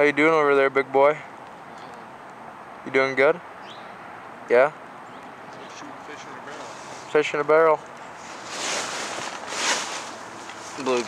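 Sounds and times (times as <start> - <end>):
rustling noise on microphone: 6.5 - 7.2, 8.1 - 11.0.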